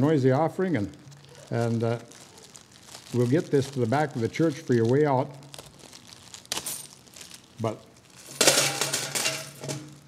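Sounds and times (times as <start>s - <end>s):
coins rattling in metal pail: 8.2s - 10.0s.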